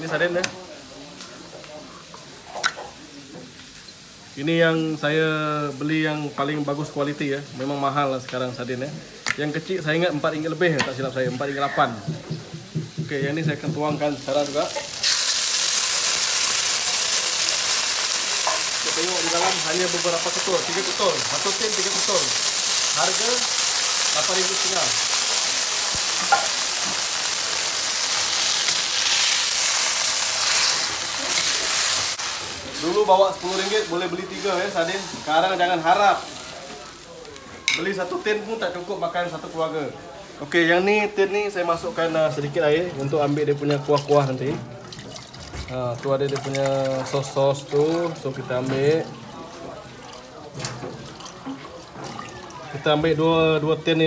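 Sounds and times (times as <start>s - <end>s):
fish sizzling in hot oil: 12.0s - 39.8s.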